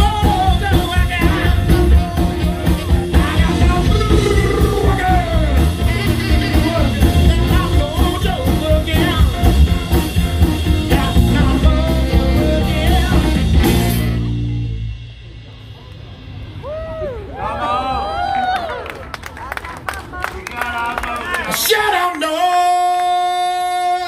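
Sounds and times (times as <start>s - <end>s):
live rock band with vocals: 0.0s - 17.1s, 21.6s - 24.0s
crowd cheering: 15.8s - 24.0s.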